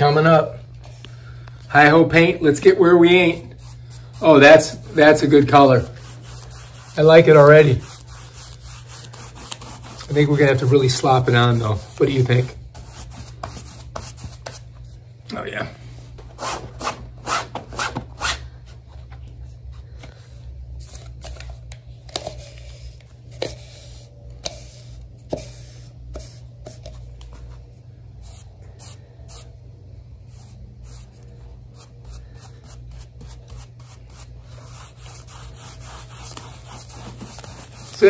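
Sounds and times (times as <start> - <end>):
steady low hum: 0.0 - 38.0
brush scrubbing fabric: 3.1 - 14.5, 31.8 - 38.0.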